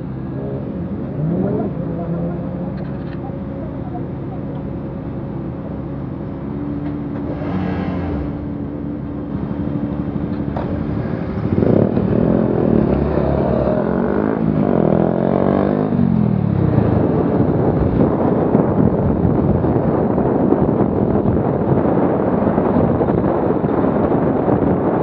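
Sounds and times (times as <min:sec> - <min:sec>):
hum of city traffic: 0:00.0 - 0:25.0
motorcycle engines revving and passing: 0:00.0 - 0:25.0.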